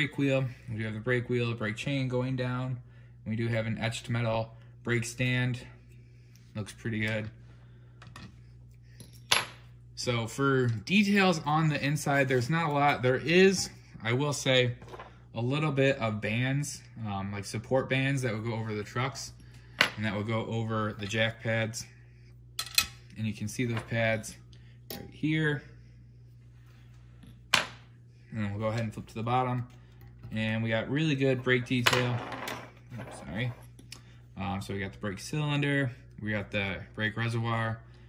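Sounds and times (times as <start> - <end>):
faint low hum: 0.0 - 38.0.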